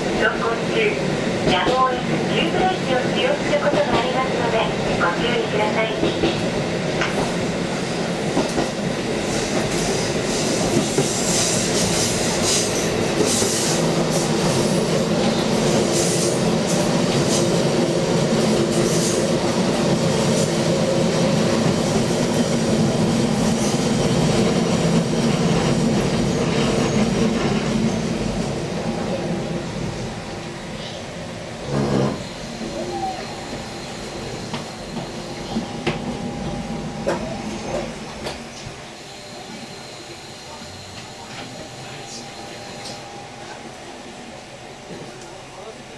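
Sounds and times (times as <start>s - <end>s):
engine and wheel-on-rail rumble: 6.0s - 39.0s.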